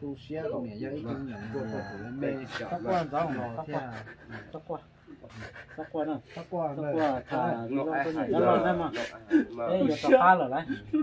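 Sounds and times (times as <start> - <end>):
rooster crowing: 1.0 - 3.7.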